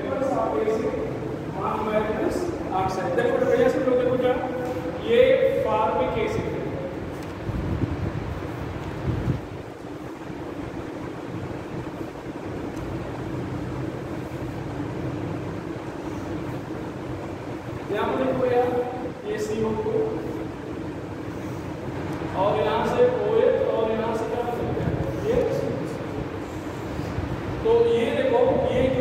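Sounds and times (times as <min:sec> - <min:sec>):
man speaking: 0:00.0 - 0:07.0, 0:17.9 - 0:20.5, 0:22.3 - 0:26.1, 0:27.6 - 0:29.0
room noise hum: 0:00.0 - 0:29.0.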